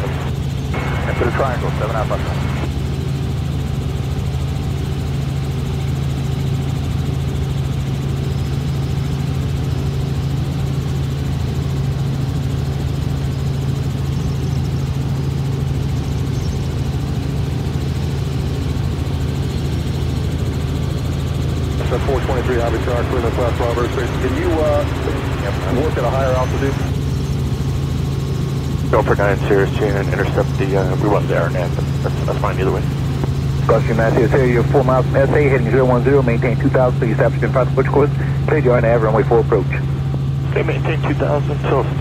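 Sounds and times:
helicopter engine and rotor drone: 0.0 - 42.0.

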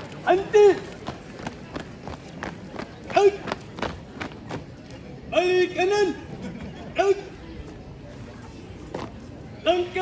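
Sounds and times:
boots stamping on hard court: 0.7 - 4.8.

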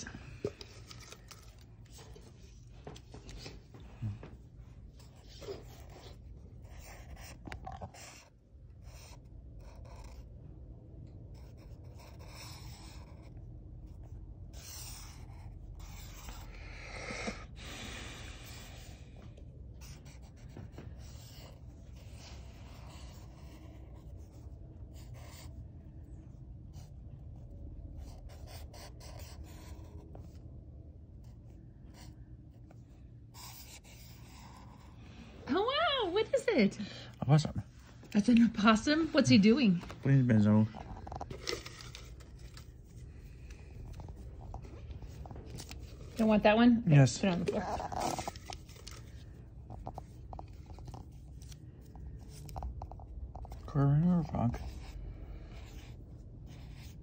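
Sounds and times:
paper rustling: 0.3 - 3.9, 39.6 - 46.4, 47.2 - 52.8
marker scratching on paper: 4.8 - 10.4, 11.3 - 19.0, 19.8 - 26.0, 26.7 - 30.4, 31.2 - 35.0, 47.2 - 57.0.

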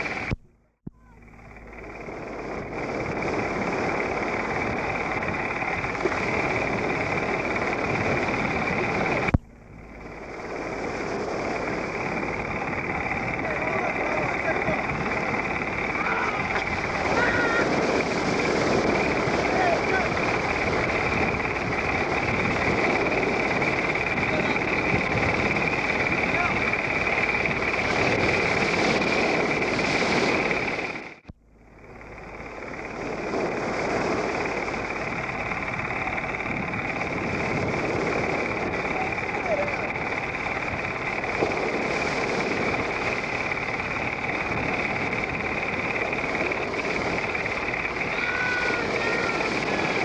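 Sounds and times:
wind on microphone: 0.0 - 50.0
breaking surf: 1.7 - 50.0.

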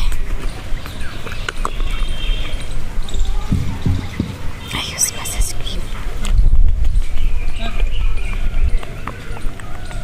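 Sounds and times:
soft whispering: 4.6 - 5.9.

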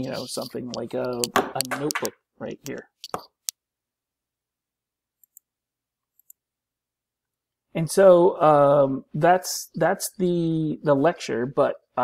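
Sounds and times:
computer mouse clicks: 5.2 - 5.5, 6.1 - 6.4.

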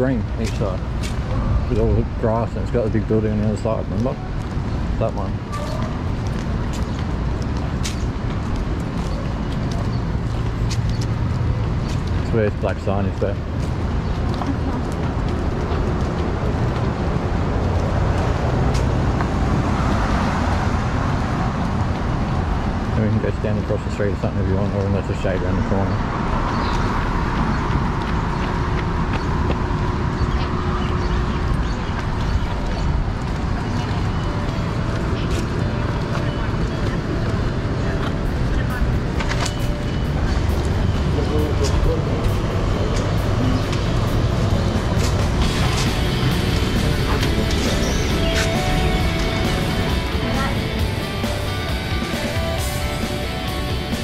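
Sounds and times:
people's voices: 0.0 - 6.2, 12.1 - 13.5, 14.2 - 16.9, 22.8 - 26.1, 30.1 - 54.0
traffic rumble: 0.0 - 54.0
vehicle engine humming: 0.0 - 54.0.

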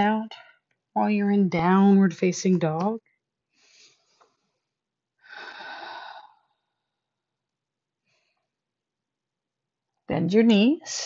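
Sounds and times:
person sighing: 5.3 - 6.3.

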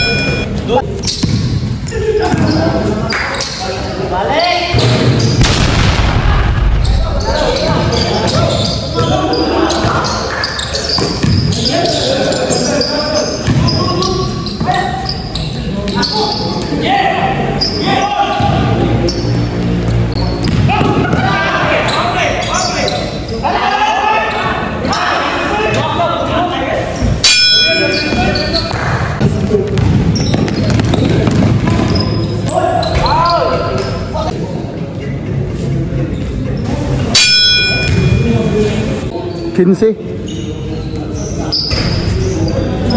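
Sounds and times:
players shouting and chatting: 0.0 - 42.9
basketball bouncing on gym floor: 1.1 - 1.6, 11.0 - 11.6, 13.4 - 13.9, 20.4 - 21.3, 28.1 - 32.2
sharp knock with ringing: 27.2 - 28.2, 37.2 - 38.3.

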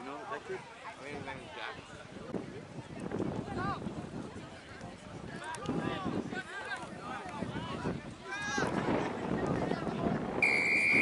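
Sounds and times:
outdoor noise: 0.0 - 11.0.

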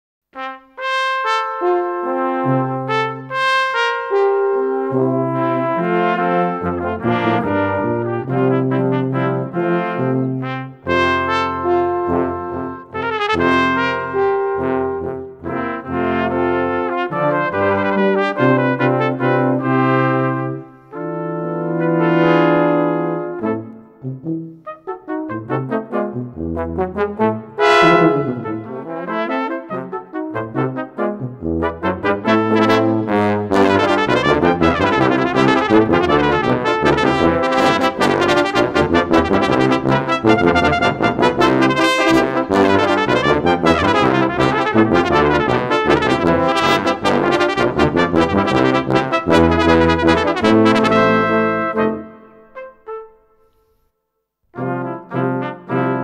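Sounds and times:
tuba bass line: 0.4 - 53.0, 54.6 - 56.0
trumpets playing tune: 0.4 - 53.6, 54.6 - 56.0
brass quintet playing: 0.4 - 53.7, 54.6 - 56.0.

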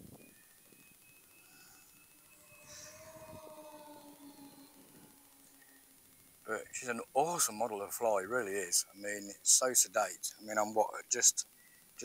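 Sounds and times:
model plane motors whining: 0.0 - 8.7.

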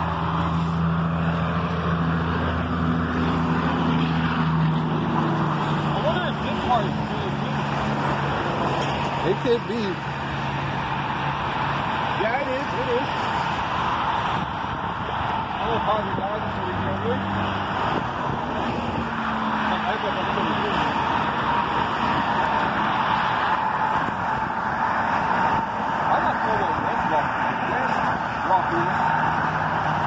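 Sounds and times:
road traffic hum: 0.0 - 30.0.

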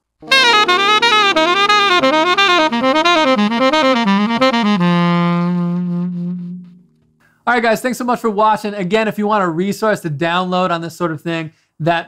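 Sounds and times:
sustained backing chord: 0.2 - 7.1
tenor saxophone playing: 0.2 - 7.1.

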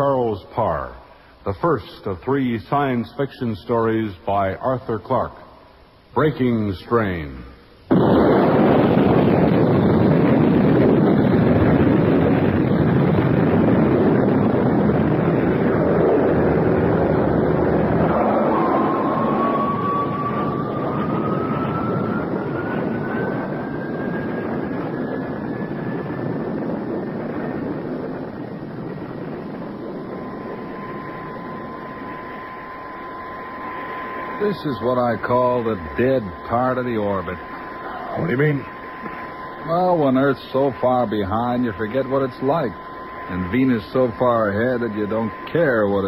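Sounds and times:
spaceship drive rushing noise: 7.9 - 46.0
rising electronic tone: 14.4 - 46.0.

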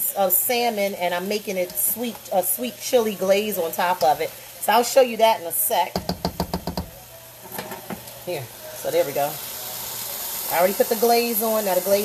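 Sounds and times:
cookware knocking on frying pan: 5.9 - 7.0.

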